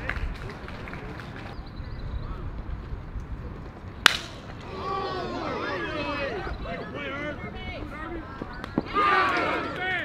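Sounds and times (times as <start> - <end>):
bat hitting baseball: 4.0 - 4.6
voices calling out: 4.3 - 10.0.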